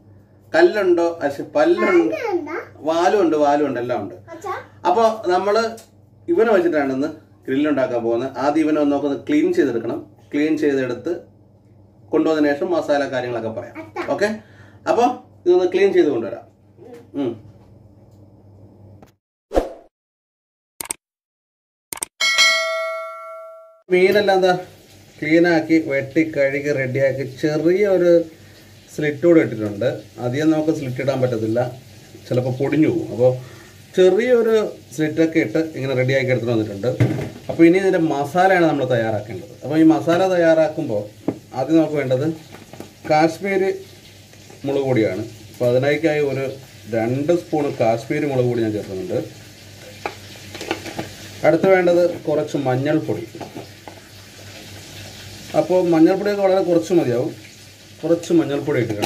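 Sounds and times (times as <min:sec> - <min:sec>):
notification bell chime: 0:22.2 - 0:23.8
faint steady hiss: 0:23.9 - 0:59.0.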